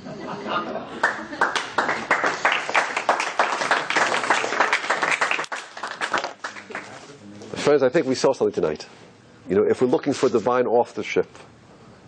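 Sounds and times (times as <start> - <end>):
audience clapping: 1.0 - 7.0.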